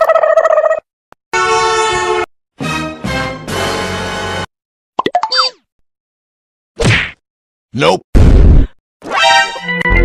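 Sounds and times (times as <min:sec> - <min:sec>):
buzzy horn blast: 0:01.4 - 0:02.3.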